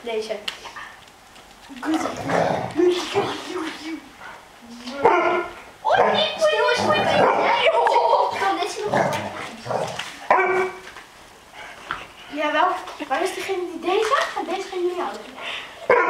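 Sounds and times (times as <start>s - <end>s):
puppies barking and yipping: 5.0s - 10.8s
children squealing and laughing: 5.4s - 9.3s.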